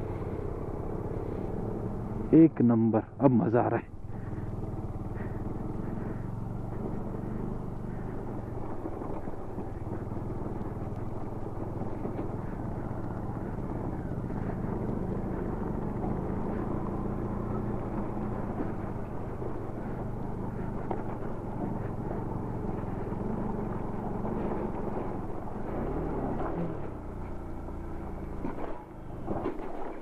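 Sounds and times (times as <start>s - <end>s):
motorcycle engine running: 0.0s - 30.0s.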